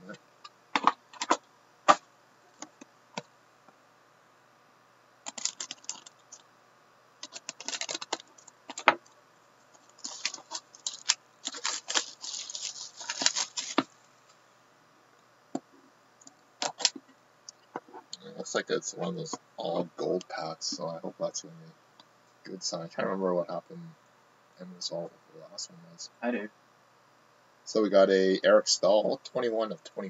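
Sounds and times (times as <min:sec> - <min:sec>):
plastic shrink-wrap tearing: 0:05.3 - 0:06.2, 0:07.2 - 0:08.9, 0:09.9 - 0:13.9, 0:16.6 - 0:17.0.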